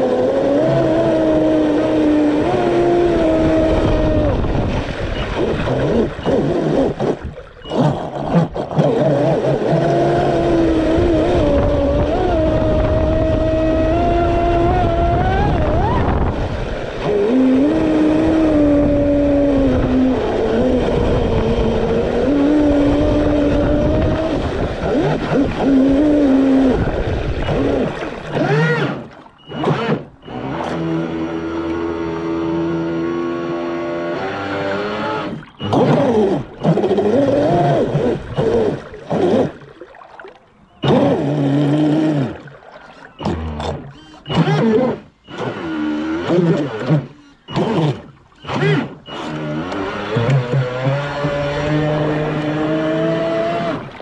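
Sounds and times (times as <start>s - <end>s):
electric motor and propeller whine: 0.0s - 39.8s, 40.4s - 54.0s
water noise: 0.0s - 54.0s.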